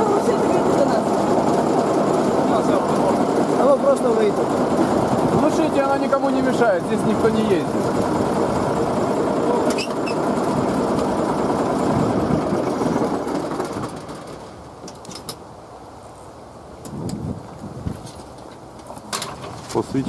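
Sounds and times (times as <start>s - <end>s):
heavy machine engine running: 0.0s - 14.7s.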